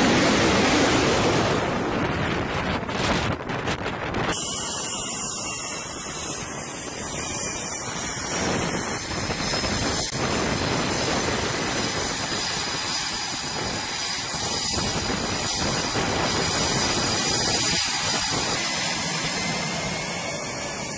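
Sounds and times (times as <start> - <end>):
jet engines roaring with turbine whine: 0.0 - 20.9.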